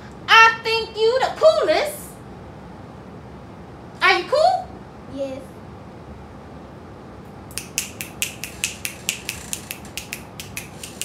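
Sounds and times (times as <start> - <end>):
fingers snapping: 7.5 - 11.0.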